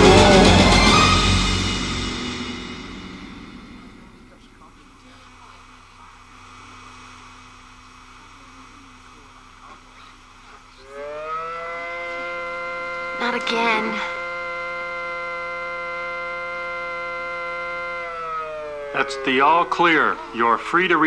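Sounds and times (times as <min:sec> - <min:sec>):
music: 0:00.0 - 0:04.4
civil defense siren wailing: 0:00.0 - 0:04.7, 0:10.8 - 0:21.0
low hum: 0:00.0 - 0:21.0.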